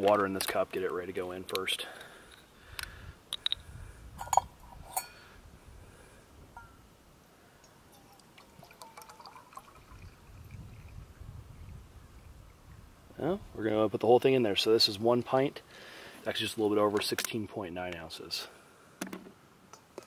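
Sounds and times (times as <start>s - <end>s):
water pouring into metal cup: 7.9s - 12.3s.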